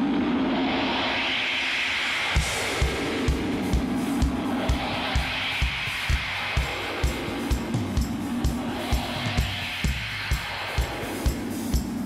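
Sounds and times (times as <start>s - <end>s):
sustained wash of sound: 0.0s - 11.7s
cymbal strokes: 0.1s - 12.0s.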